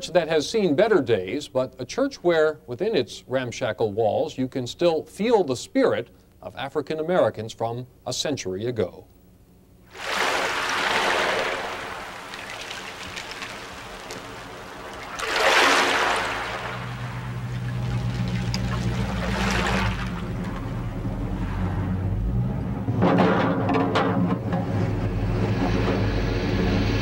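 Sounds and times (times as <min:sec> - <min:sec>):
low steady hum: 0:00.0 - 0:23.1
water lapping: 0:09.9 - 0:21.0.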